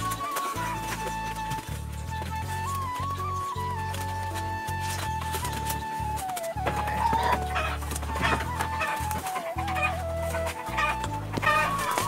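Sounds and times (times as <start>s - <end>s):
chickens clucking: 0.0s - 2.8s, 4.8s - 12.0s
slow melodic background music: 0.0s - 12.0s.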